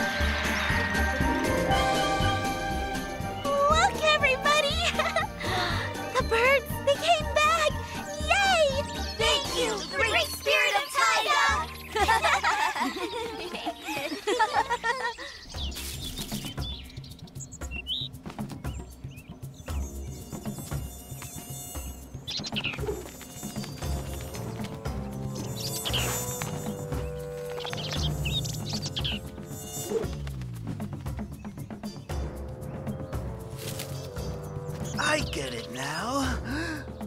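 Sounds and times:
background music with steady beat: 0.0 - 6.9, 7.7 - 37.0
cartoon mosquitoes buzzing: 0.0 - 12.5, 18.9 - 37.0.

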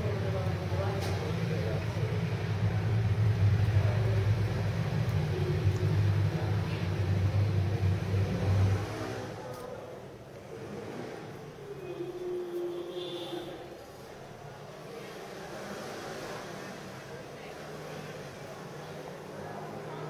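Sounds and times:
low mechanical hum: 0.0 - 15.3.

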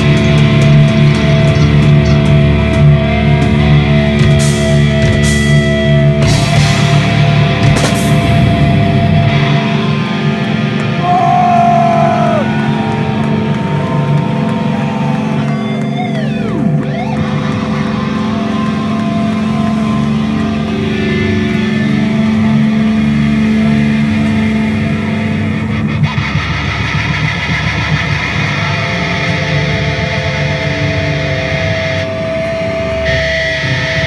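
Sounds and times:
electric guitar feedback and drone: 0.0 - 34.0.

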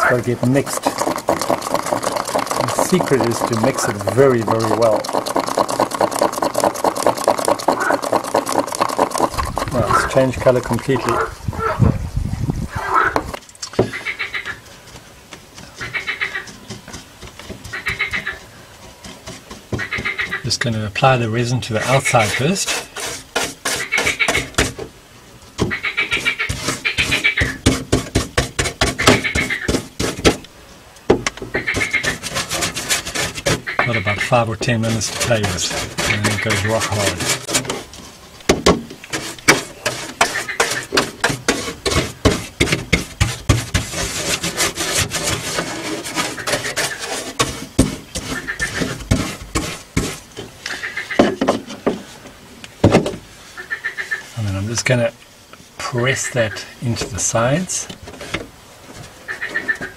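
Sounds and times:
stick stirring resin in plastic cup: 0.0 - 11.3, 15.6 - 24.8, 26.0 - 30.5, 31.5 - 38.2, 38.9 - 50.5.

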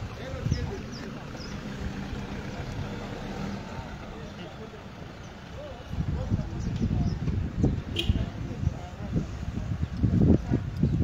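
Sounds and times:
vehicle engine running: 0.0 - 6.6
faint voices: 0.0 - 11.0.

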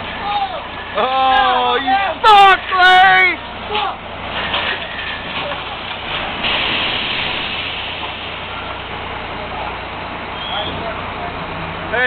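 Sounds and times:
loud drilling rig machinery: 0.0 - 12.0
hiss: 6.4 - 8.1.

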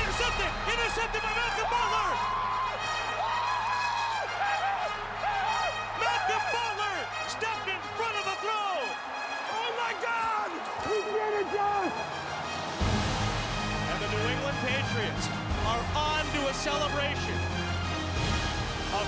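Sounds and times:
men yelling and whooping: 0.0 - 12.3
background music: 0.0 - 19.0.

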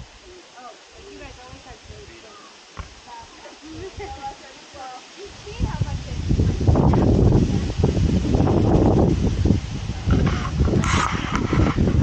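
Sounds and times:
wind buffeting microphone: 0.9 - 12.0.

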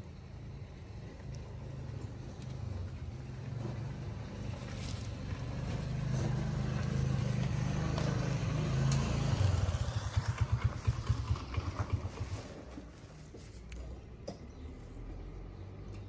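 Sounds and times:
engine rumble and putter: 0.0 - 16.0.

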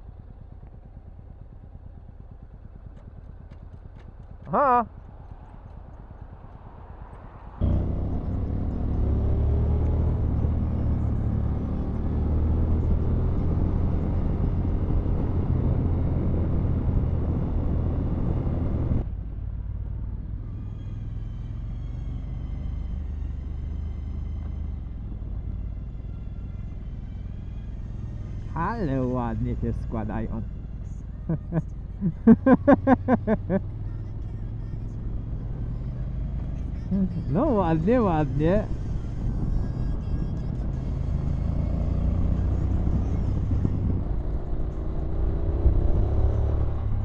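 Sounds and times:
motorcycle engine: 0.0 - 47.0
wind noise while riding: 42.9 - 44.6.

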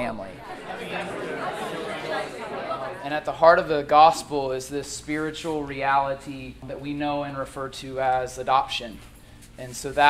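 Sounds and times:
crowd chatter: 0.2 - 3.9.

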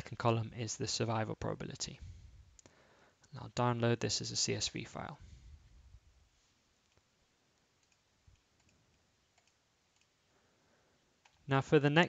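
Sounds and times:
computer mouse clicks: 7.8 - 10.2.

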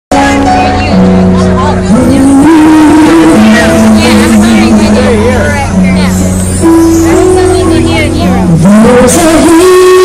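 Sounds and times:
live band playing loudly: 0.1 - 10.0
lead voice singing: 1.4 - 6.0, 6.6 - 10.0.

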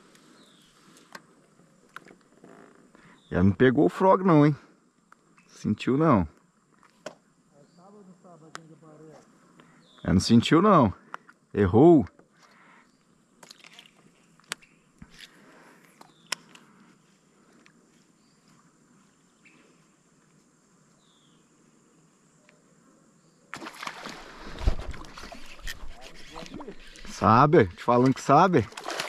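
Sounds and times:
water sloshing against hull: 23.6 - 29.0.

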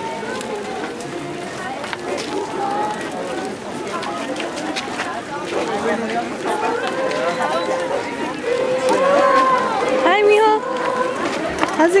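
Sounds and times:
crowd talking: 0.0 - 12.0
voices holding long notes: 0.0 - 12.0.

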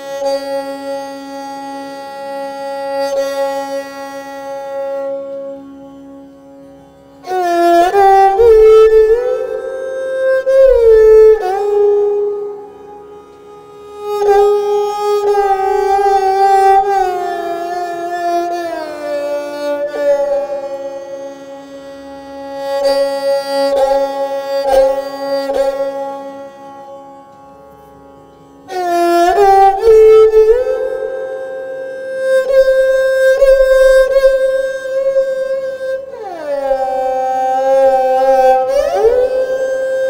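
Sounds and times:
bowed string long held note: 0.0 - 40.0.

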